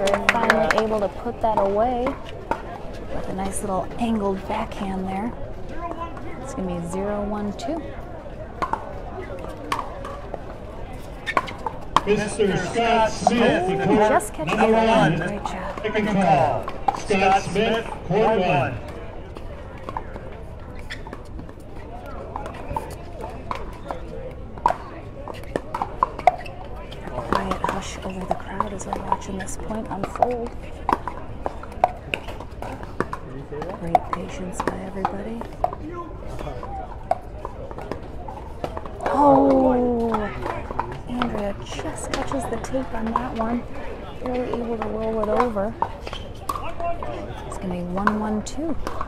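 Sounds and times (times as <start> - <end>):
people talking: 0.0 - 2.2, 3.2 - 5.3, 6.5 - 7.8, 12.1 - 18.9, 27.0 - 30.5, 33.8 - 35.4, 39.0 - 40.4, 41.1 - 45.8, 47.0 - 48.8.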